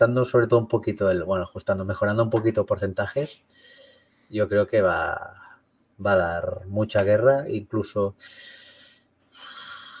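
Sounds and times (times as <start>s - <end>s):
person breathing into microphone: 8.2s - 10.0s.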